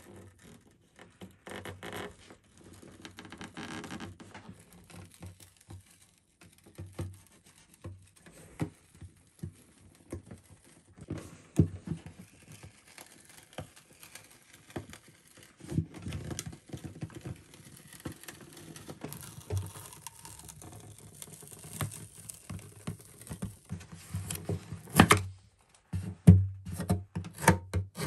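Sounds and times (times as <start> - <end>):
plastic pickguard peeling off: 17.1 - 25.3.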